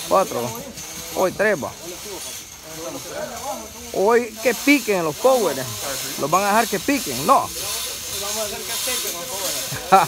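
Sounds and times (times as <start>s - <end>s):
faint voices talking: 0.0s - 10.0s
high-pitched hiss: 0.0s - 10.0s
man's voice: 4.0s - 7.6s.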